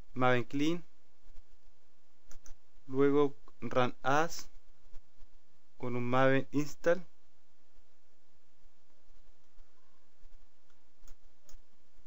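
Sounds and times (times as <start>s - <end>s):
computer mouse clicks: 2.3s - 2.6s, 10.6s - 11.7s.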